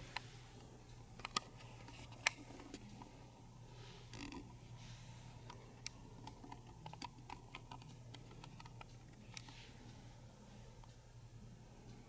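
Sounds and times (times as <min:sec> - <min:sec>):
steady low hum: 0:00.0 - 0:12.0
small clicks and ticks: 0:05.4 - 0:09.6.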